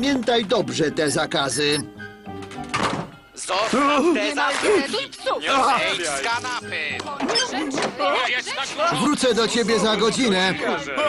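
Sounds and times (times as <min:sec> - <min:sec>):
cartoon background music: 0:00.0 - 0:11.0
door shutting with a thunk: 0:02.7 - 0:03.2.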